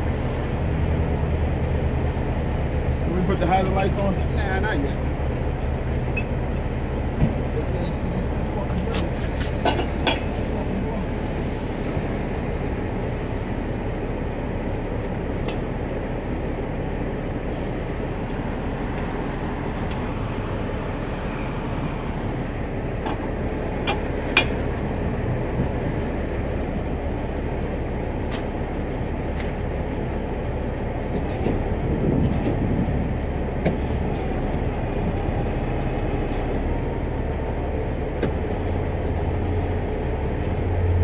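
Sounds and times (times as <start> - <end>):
truck engine idling: 0.0 - 41.0
sharp metallic clanks: 9.5 - 10.4.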